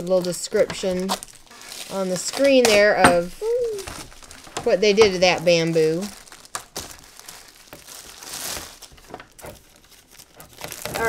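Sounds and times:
plastic wrap crinkling: 0.0 - 11.0.

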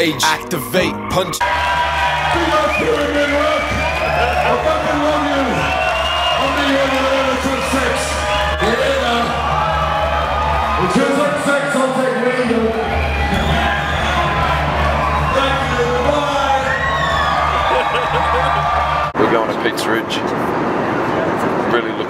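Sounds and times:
hip hop music with heavy bass: 0.0 - 19.2
crowd whooping and cheering: 1.4 - 19.2.

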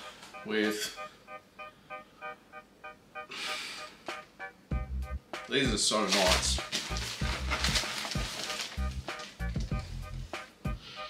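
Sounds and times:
bright repeated notes: 0.0 - 5.6.

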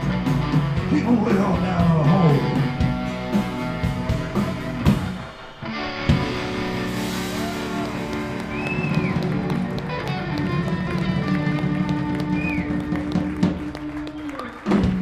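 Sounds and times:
live rock band chords: 0.0 - 15.0.

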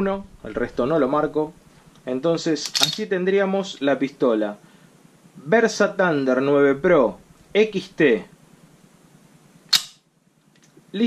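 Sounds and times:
pistol click: 2.6 - 3.0, 9.7 - 10.0.

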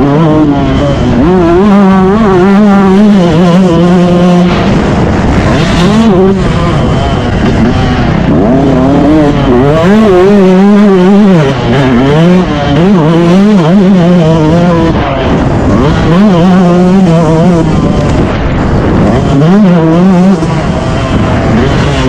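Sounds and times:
dirt bike engine revving: 0.0 - 22.0.

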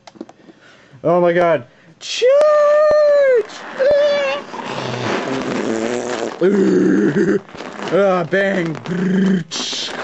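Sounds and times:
person making battle noises: 2.2 - 10.0
short cry: 2.5 - 7.5
raspy growl: 4.5 - 7.5.

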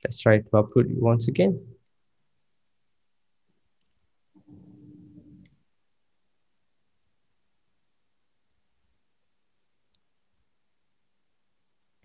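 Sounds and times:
computer mouse click: 3.8 - 4.6, 5.2 - 5.7
faint low sound: 4.2 - 12.0.

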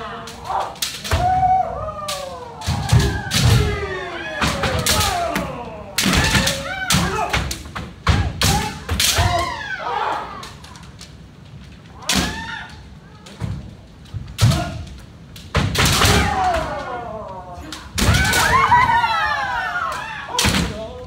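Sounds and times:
long drawn-out shouts: 0.0 - 10.9, 15.9 - 21.0.

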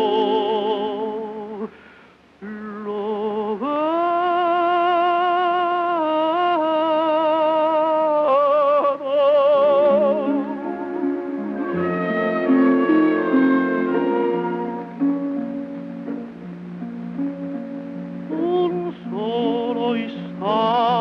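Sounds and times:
tenor singing opera: 0.0 - 21.0
orchestral accompaniment: 9.6 - 21.0.

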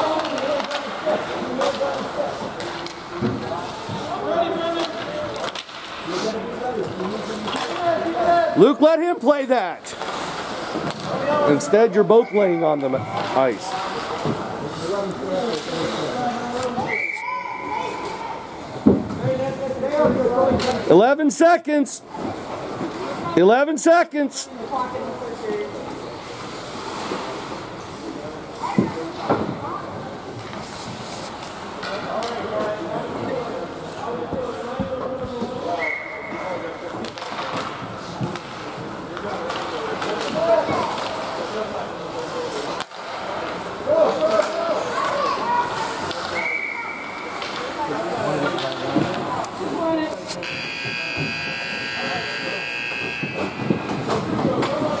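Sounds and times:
scoreboard buzzer: 50.4 - 53.9.

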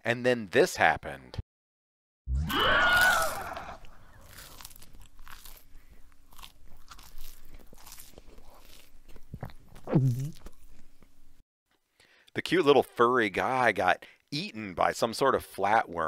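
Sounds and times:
chewing and crunching: 2.9 - 11.2.

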